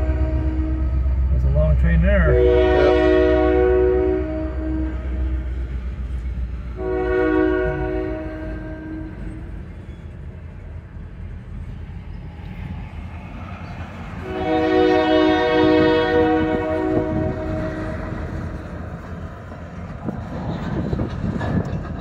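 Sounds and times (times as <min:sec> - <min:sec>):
locomotive air horn blasts: 0:00.0 - 0:01.1, 0:02.2 - 0:05.6, 0:06.7 - 0:09.6, 0:14.2 - 0:18.5
train rumbling past: 0:00.0 - 0:22.0.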